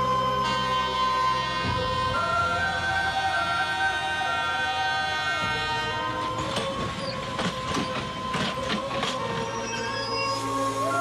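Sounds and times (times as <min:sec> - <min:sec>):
film score music: 0:00.0 - 0:11.0
train horn: 0:00.0 - 0:11.0
train wheels clacking over rail joints: 0:05.5 - 0:09.9.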